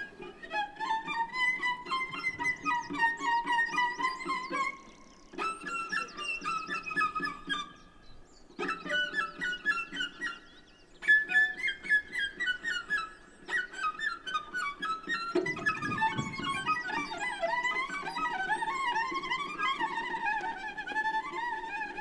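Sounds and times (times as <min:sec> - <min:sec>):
bowed cello: 0:00.0 - 0:07.8, 0:08.6 - 0:22.0.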